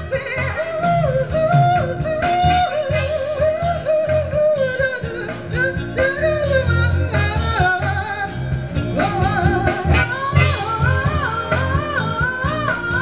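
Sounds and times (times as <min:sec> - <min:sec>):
drums: 0:00.0 - 0:13.0
electric bass: 0:00.0 - 0:13.0
guitar: 0:00.0 - 0:13.0
vocal with vibrato: 0:00.0 - 0:13.0.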